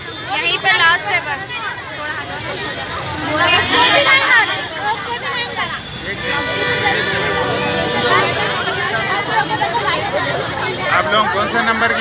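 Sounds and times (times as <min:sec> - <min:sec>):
girls chattering: 0:00.0 - 0:12.0.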